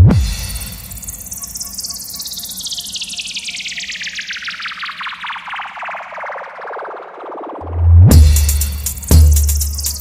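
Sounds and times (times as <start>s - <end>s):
low bass tone: 7.6s - 9.8s.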